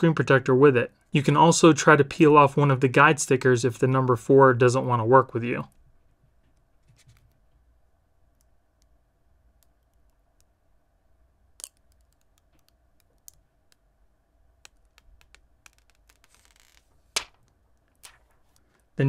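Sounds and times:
small plastic clicks: 0:11.6 - 0:13.9, 0:14.6 - 0:18.9.

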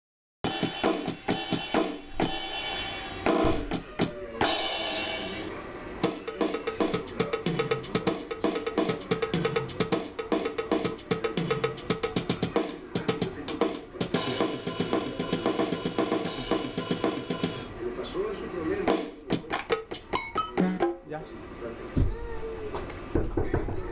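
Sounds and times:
electronic drum kit hits: 0:00.4 - 0:17.7, 0:18.9 - 0:21.1
steady cymbal-like hiss: 0:00.5 - 0:03.4, 0:04.4 - 0:19.3.

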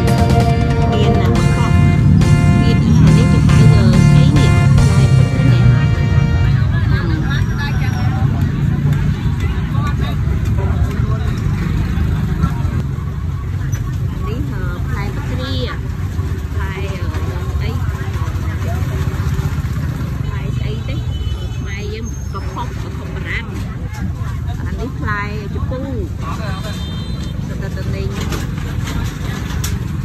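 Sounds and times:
rumble of passing traffic: 0:00.0 - 0:30.0
voices of vendors and shoppers: 0:00.0 - 0:30.0.

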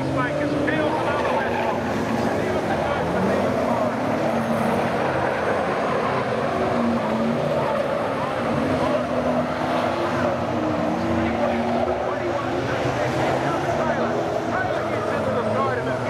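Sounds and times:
race car engines roaring: 0:00.0 - 0:16.0.

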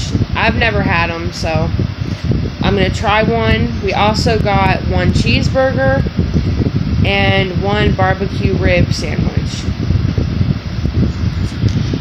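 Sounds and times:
air buffeting microphone: 0:00.0 - 0:12.0.

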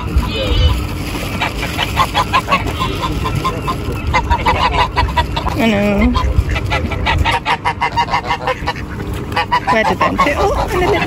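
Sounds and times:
waterbirds calling: 0:00.0 - 0:11.0.

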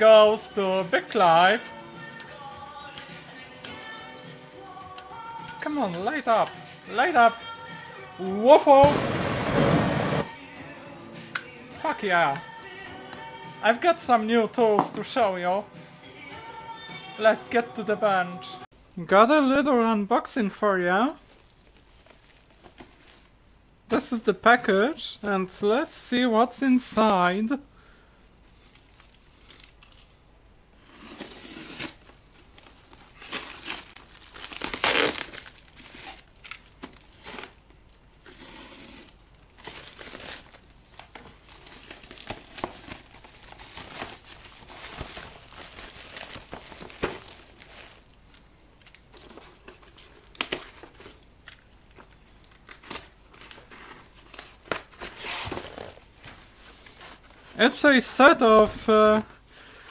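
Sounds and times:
cardboard box sliding and opening: 0:08.8 - 0:10.3, 0:30.8 - 0:32.0, 0:38.3 - 0:39.1
plastic wrapping crinkling and tearing: 0:21.2 - 0:23.3, 0:28.6 - 0:30.1, 0:31.2 - 0:37.9, 0:39.0 - 0:59.1.

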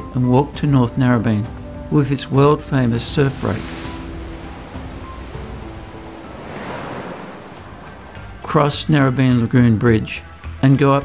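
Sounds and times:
soft background music: 0:00.0 - 0:11.0
ocean waves breaking: 0:01.7 - 0:09.6.

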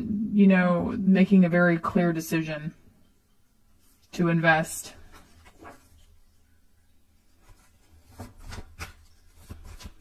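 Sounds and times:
faint low hum: 0:00.0 - 0:10.0
cards rustling: 0:07.4 - 0:10.0.

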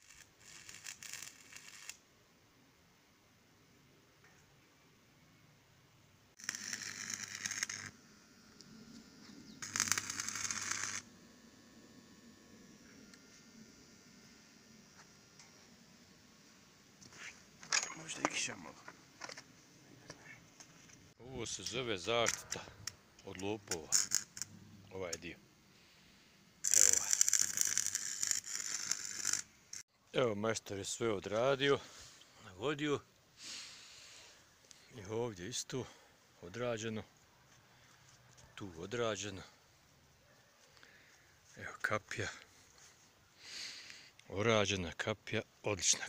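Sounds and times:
welding arc crackling: 0:00.0 - 0:02.0, 0:06.4 - 0:11.2, 0:23.6 - 0:24.5, 0:26.6 - 0:29.8
low hum: 0:06.4 - 0:18.1.

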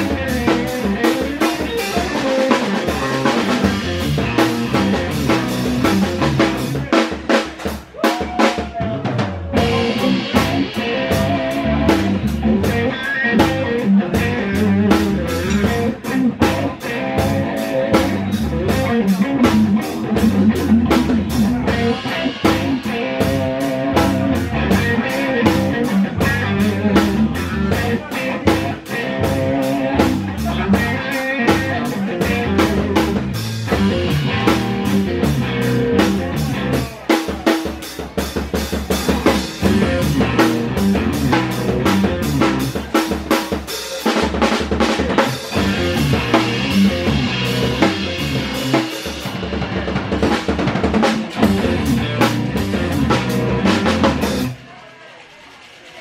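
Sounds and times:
drum kit beat: 0:00.0 - 0:54.8
rock band playing: 0:00.0 - 0:56.0.

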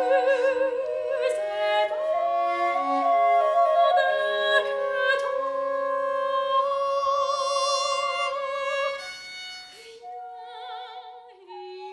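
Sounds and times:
baroque violin accompaniment: 0:00.0 - 0:11.9
soprano singing with vibrato: 0:00.0 - 0:11.9.

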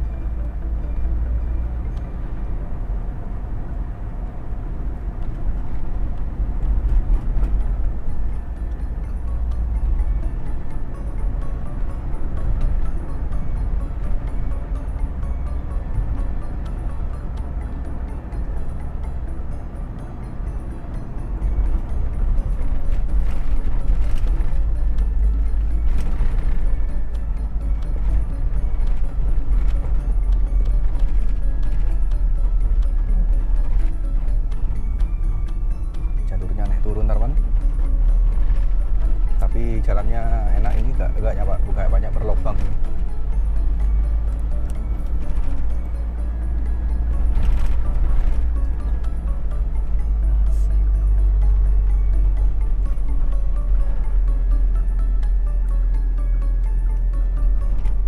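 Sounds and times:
background music: 0:00.0 - 0:58.0
road and engine rumble: 0:00.0 - 0:58.0.

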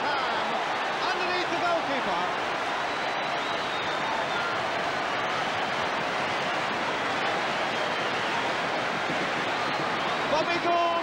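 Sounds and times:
large crowd cheering: 0:00.0 - 0:11.0.

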